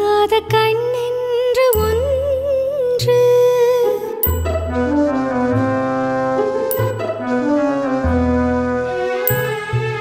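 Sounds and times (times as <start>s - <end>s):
woman singing wordless melody: 0.0s - 4.4s.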